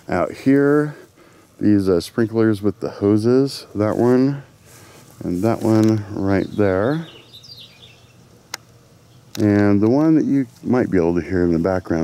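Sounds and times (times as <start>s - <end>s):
faint bird chirps: 6.3s - 8.3s.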